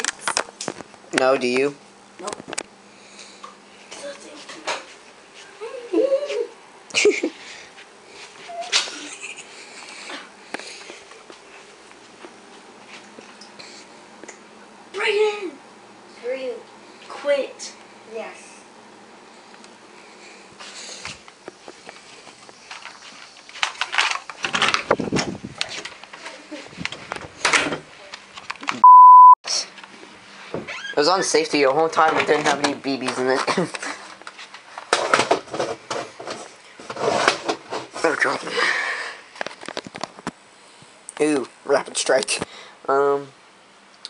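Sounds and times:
censor bleep: 28.8s - 29.4s.

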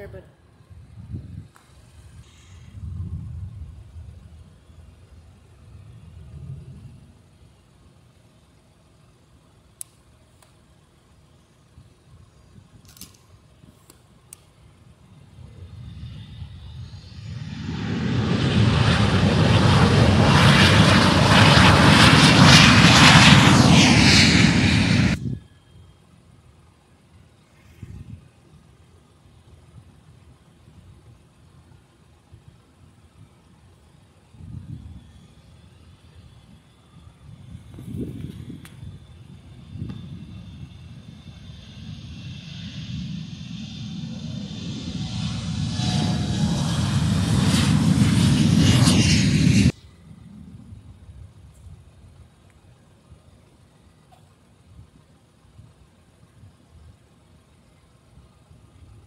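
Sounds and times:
jet engines on takeoff: 0.0s - 59.0s.

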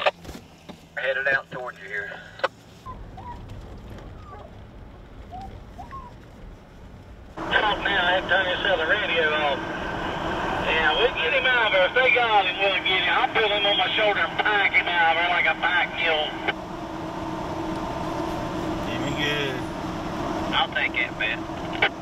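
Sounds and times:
truck road and engine noise: 0.0s - 22.0s
tinny radio transmission: 1.0s - 2.5s, 7.4s - 16.6s, 18.7s - 19.8s, 20.5s - 22.0s.

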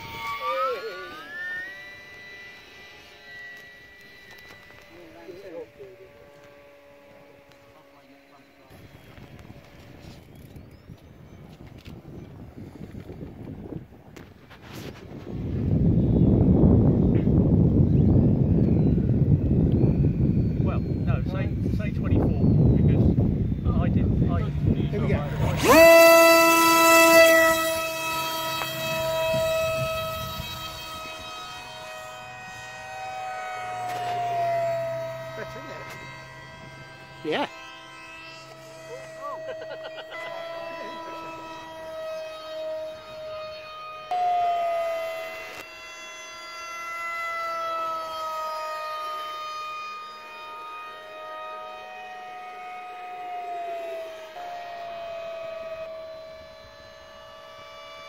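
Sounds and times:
model jet electric motor whining: 0.0s - 58.0s.

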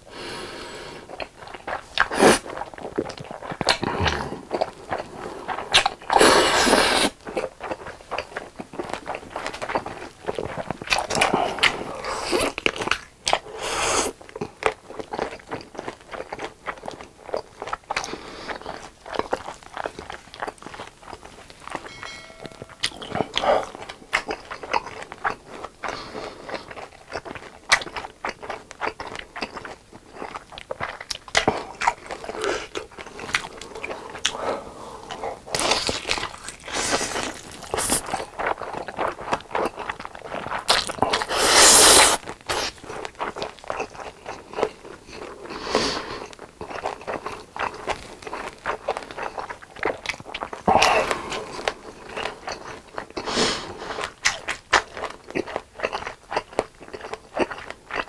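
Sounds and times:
noodles slurped and chewed: 0.2s - 21.8s, 22.9s - 58.0s
biting and chewing food: 1.0s - 22.0s, 22.6s - 58.0s.

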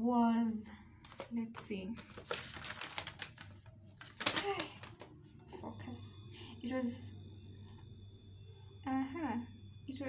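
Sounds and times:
paper receipt rustling: 1.0s - 5.4s.

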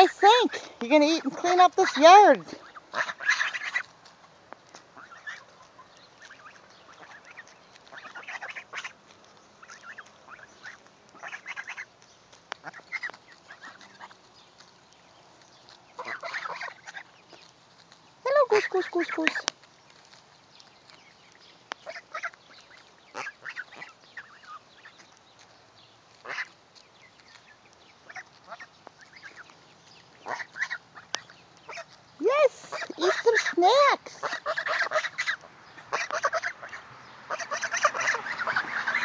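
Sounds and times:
geese honking: 0.0s - 4.0s, 4.7s - 14.3s, 15.9s - 17.3s, 18.3s - 19.5s, 21.8s - 25.1s, 26.2s - 26.6s, 28.0s - 39.0s.

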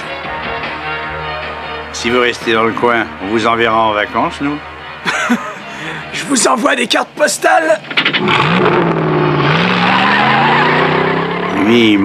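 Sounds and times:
tyres squealing: 7.7s - 12.0s
car engine revving: 7.8s - 12.0s.

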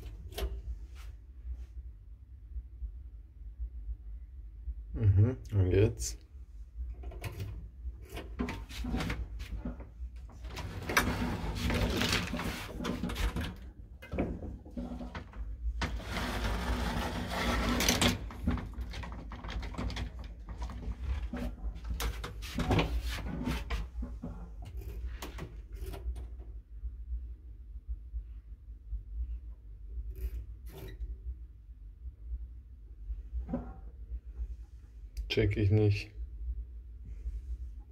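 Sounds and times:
steady low hum: 0.0s - 37.9s
metal gate sliding and rattling: 8.1s - 24.4s.

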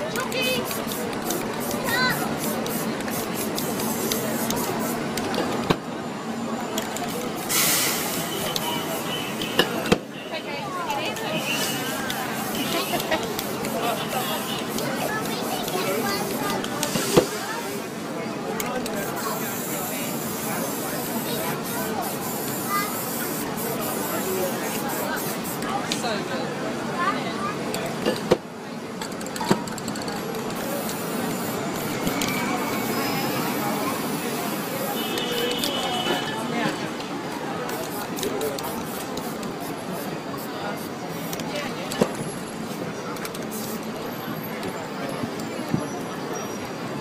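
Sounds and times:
aerosol spray can hissing: 0.5s - 5.2s, 7.0s - 9.4s, 11.4s - 17.8s, 18.9s - 25.7s, 30.3s - 36.2s, 37.6s - 41.5s, 43.4s - 43.9s.

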